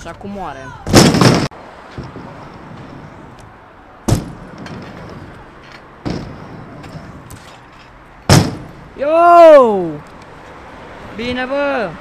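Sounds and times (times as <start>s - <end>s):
scooter banging on ramp: 0.9s - 2.6s, 4.1s - 5.3s, 6.0s - 7.7s, 8.3s - 8.9s
scooter wheels rolling on ramp: 0.9s - 3.5s, 4.1s - 8.8s.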